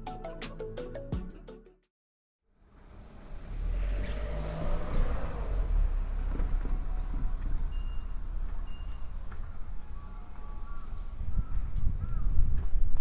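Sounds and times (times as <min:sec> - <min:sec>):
low rumble of traffic: 0:02.4 - 0:13.0
vehicle passing: 0:02.6 - 0:11.8.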